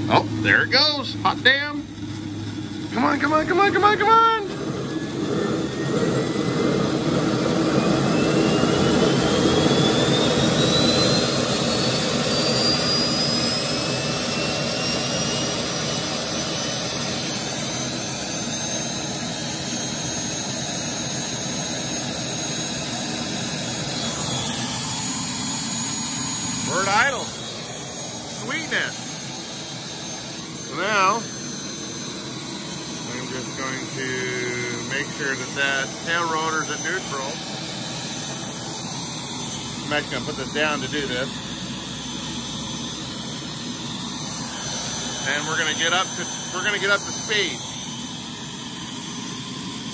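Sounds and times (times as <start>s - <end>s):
turbine engine whine: 0.0s - 49.9s.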